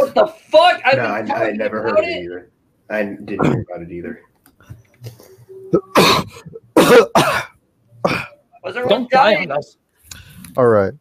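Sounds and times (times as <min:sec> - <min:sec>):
person coughing: 0:05.7 - 0:08.4.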